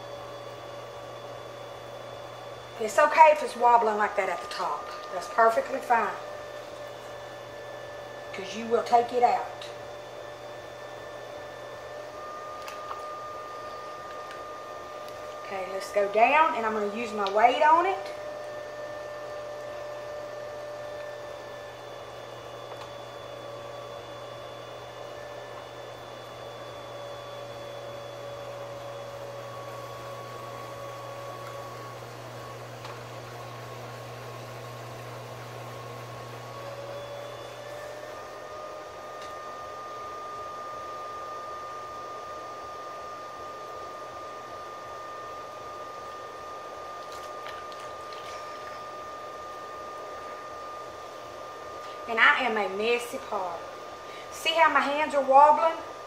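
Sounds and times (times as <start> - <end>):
potter's wheel motor whining: 0.0 - 56.0.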